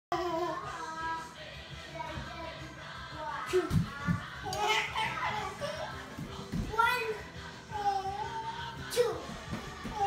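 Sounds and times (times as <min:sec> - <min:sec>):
children vocalising: 0:03.3 - 0:06.1.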